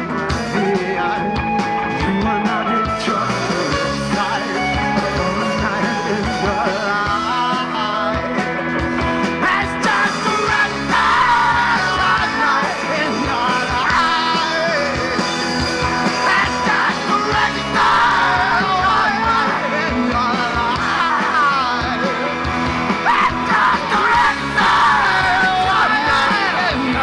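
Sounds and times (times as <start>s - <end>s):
live rock band playing: 0.0s - 27.0s
yelled lead vocal: 0.0s - 27.0s.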